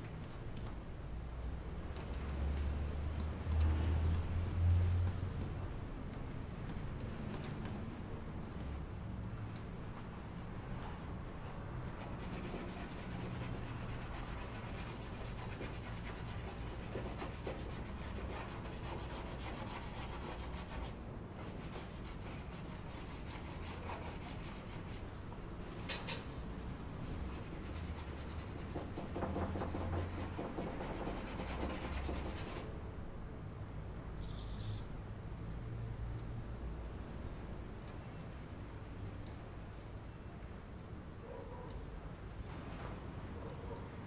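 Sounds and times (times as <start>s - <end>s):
pastel scraping on paper: 11.9s - 25.0s, 27.3s - 32.7s.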